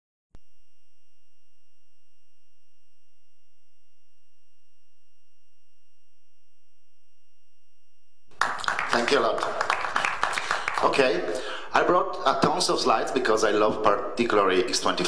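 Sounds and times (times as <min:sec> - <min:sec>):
steady electronic test tone: 0:00.4 - 0:08.3.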